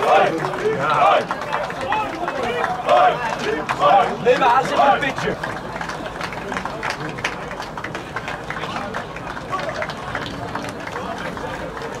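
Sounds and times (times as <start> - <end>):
many voices talking and calling: 0.0 - 12.0.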